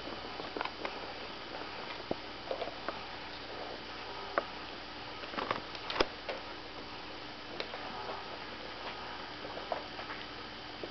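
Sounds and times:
steady low hiss: 0.0s - 10.9s.

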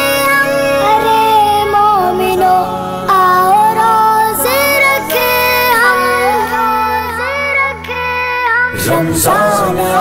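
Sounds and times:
boy singing: 0.0s - 10.0s.

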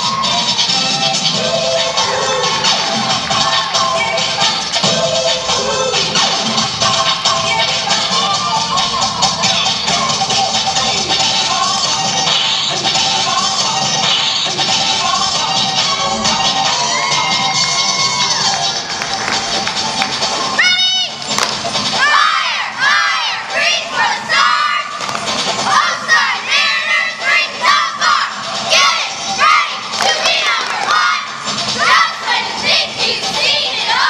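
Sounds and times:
crowd cheering: 16.0s - 32.4s
girls shouting a cheer: 16.7s - 18.8s, 20.4s - 34.0s
high-pitched shout: 20.5s - 21.2s, 22.0s - 25.0s.

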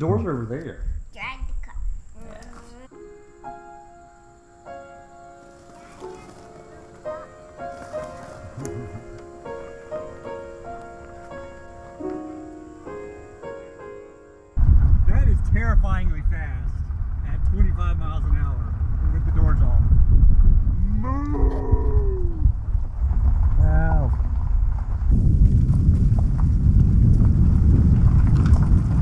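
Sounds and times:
wind rumble on microphone: 0.7s - 2.2s, 14.6s - 29.0s.

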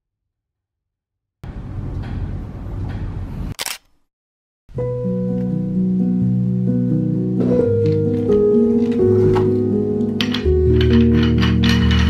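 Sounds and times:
keyboard chords background music: 4.7s - 12.0s.

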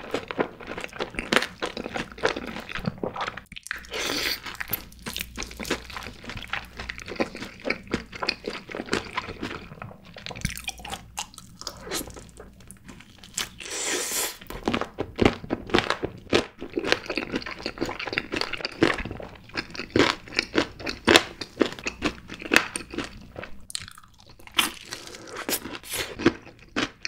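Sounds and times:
crunching fried chicken: 0.0s - 27.0s.

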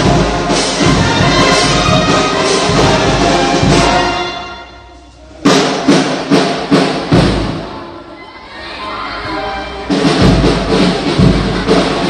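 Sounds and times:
bass drum and cymbal strikes: 0.0s - 7.7s, 9.8s - 12.0s.

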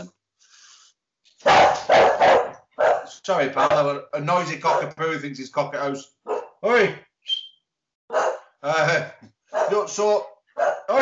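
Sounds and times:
dog barking loudly: 1.4s - 3.8s, 4.6s - 4.9s, 6.2s - 6.6s, 8.1s - 8.6s, 9.5s - 9.9s, 10.6s - 11.0s.

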